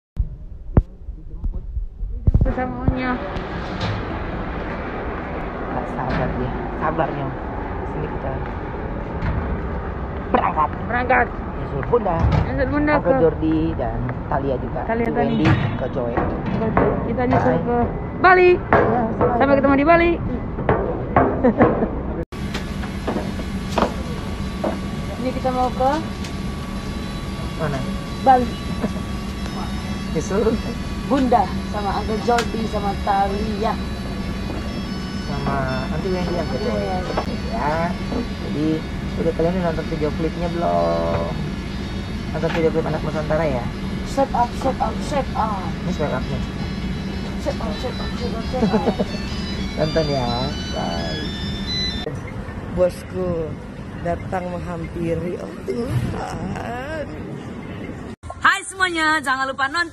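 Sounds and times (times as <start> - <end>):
airliner cabin drone: 0.2 - 58.3
person speaking: 54.2 - 57.6.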